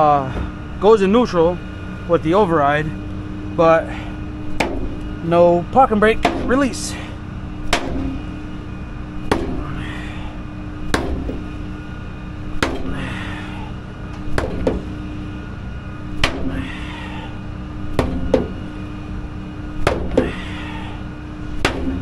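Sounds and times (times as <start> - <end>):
steady low hum: 0.0 - 22.0
hammer striking metal: 4.6 - 5.0, 6.2 - 6.6, 7.7 - 8.2, 9.3 - 9.7, 10.9 - 11.5, 12.6 - 13.0, 14.3 - 14.9, 16.2 - 16.6, 18.0 - 18.6, 19.8 - 20.3, 21.6 - 22.0.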